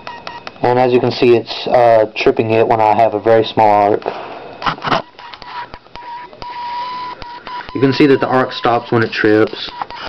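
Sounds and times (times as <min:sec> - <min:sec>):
high-pitched electrical whine: 0:00.0 - 0:10.0
sharp arc clicks: 0:04.6 - 0:10.0.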